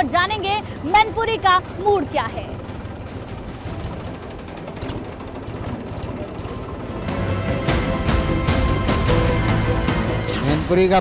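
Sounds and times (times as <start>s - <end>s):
tractor diesel engine rumbling: 0.0s - 11.0s.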